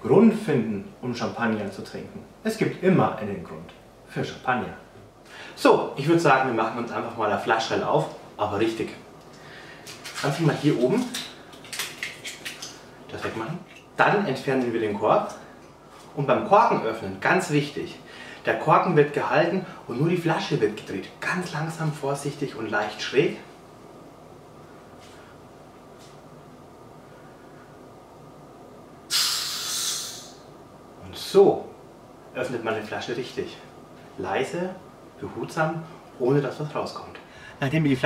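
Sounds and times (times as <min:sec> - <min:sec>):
cork releasing with soft hiss: 0:29.1 - 0:30.4.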